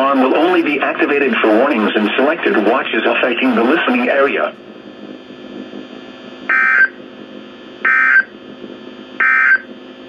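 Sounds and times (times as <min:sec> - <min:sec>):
radio hiss: 0:00.0 - 0:09.7
digital data tone bursts: 0:06.5 - 0:07.0, 0:07.8 - 0:08.3, 0:09.2 - 0:09.7.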